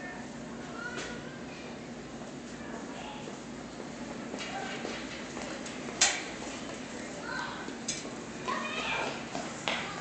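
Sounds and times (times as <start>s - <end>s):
faint voices: 0.0s - 3.5s, 6.8s - 10.0s.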